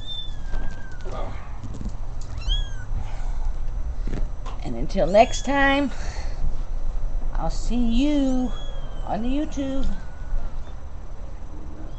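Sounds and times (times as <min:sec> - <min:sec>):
kitten mewing: 0:02.3 - 0:02.9.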